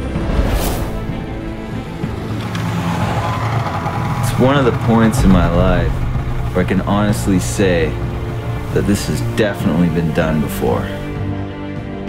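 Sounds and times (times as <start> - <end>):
background music: 0.0 - 12.0
snowmobile engines running: 0.9 - 11.2.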